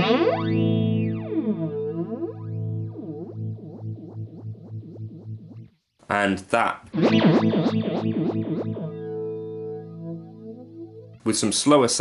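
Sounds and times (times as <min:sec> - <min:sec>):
electric guitar chord with flanger: 0:00.0 - 0:05.6, 0:06.9 - 0:11.2.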